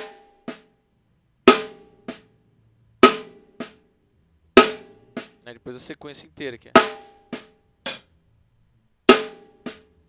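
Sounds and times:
snare drum strokes: 0.0s - 0.3s.

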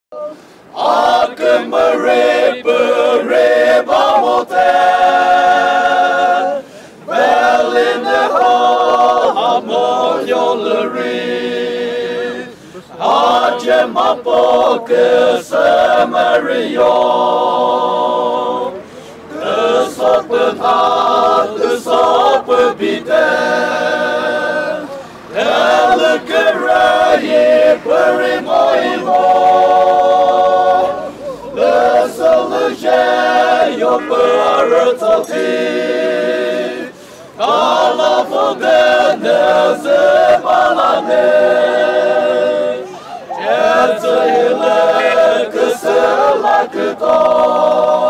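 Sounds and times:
men singing unaccompanied: 0.1s - 48.0s.

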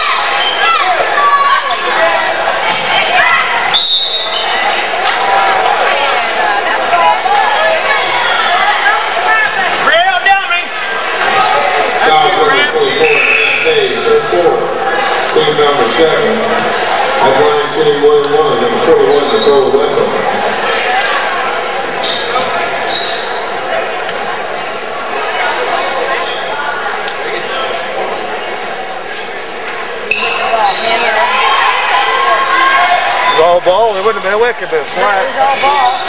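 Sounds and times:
crowd voices: 0.0s - 36.0s
referee's whistle blast: 3.7s - 4.5s, 12.9s - 13.9s.

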